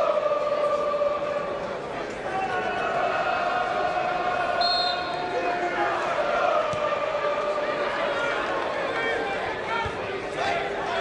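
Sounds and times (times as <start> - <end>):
crowd voices din: 0.0 - 11.0
referee's whistle: 4.6 - 5.3.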